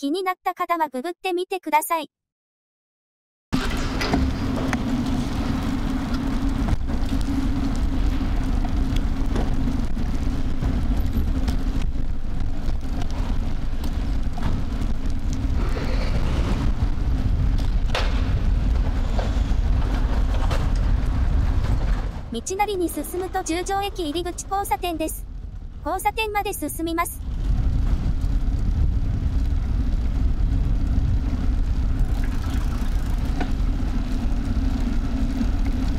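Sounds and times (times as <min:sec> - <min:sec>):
vehicle hum: 0:03.6 - 0:35.9
wind and road rumble: 0:03.6 - 0:35.9.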